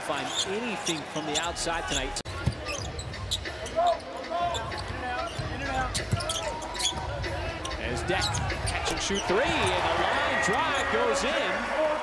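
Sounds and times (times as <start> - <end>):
indoor arena hum: 0.0 - 12.0.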